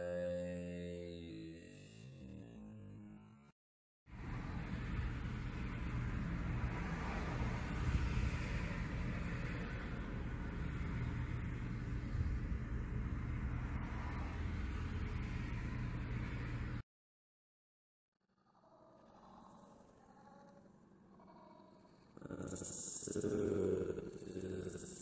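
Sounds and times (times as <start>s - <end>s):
road traffic rumble: 4.1s - 16.8s.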